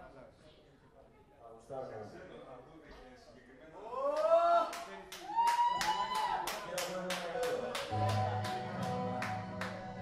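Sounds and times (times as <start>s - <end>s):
people clapping: 4.1s - 10.0s.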